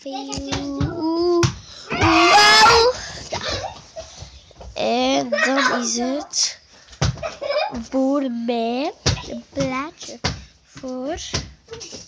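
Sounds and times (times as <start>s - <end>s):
child's wavering vocal sound: 0.5s - 3.0s.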